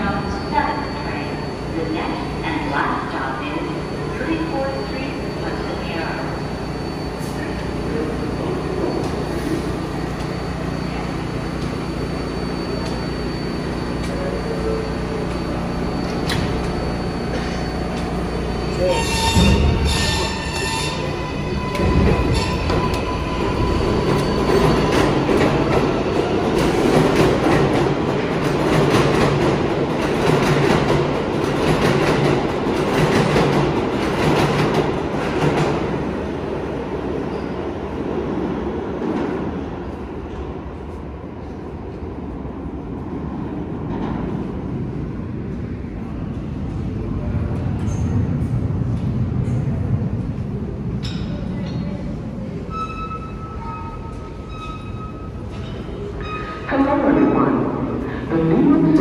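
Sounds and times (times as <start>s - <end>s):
train wheels rumbling and clicking: 19.2s - 36.2s, 45.4s - 52.8s.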